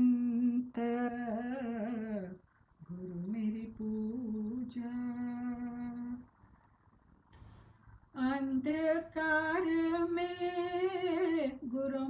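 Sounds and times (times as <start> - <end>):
faint low background noise: 0.0 - 12.0.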